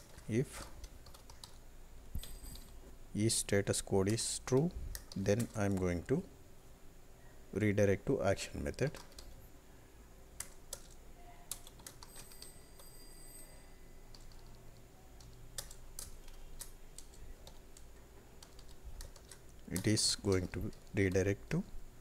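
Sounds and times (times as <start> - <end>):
computer keyboard keystrokes: 0.0 - 1.6, 4.1 - 5.9, 8.8 - 9.4, 10.4 - 12.5, 14.1 - 21.2.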